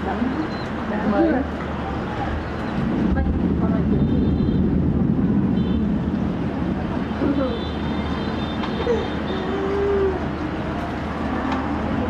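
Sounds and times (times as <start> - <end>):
faint voices: 0.0 - 4.4, 6.6 - 12.0
distant city traffic rumble: 0.0 - 12.0.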